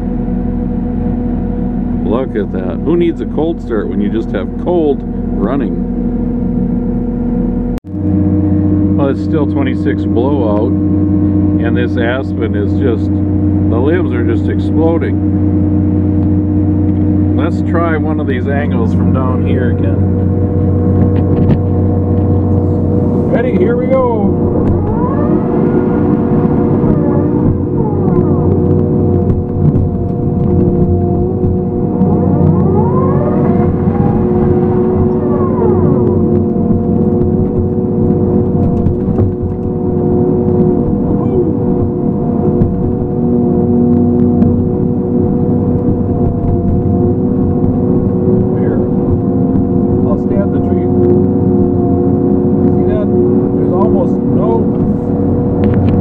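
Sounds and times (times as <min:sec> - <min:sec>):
heavy machine droning: 0:00.0 - 0:56.0
rising and falling whines: 0:00.0 - 0:56.0.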